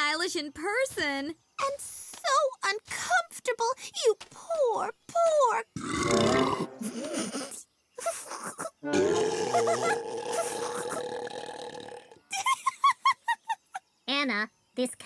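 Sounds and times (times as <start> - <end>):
cartoon cow burping: 5.8 - 7.1, 8.8 - 12.2.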